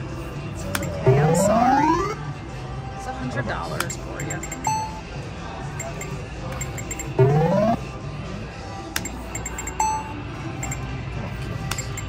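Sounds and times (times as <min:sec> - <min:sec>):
faint electronic machine chimes: 0:04.2 - 0:05.1.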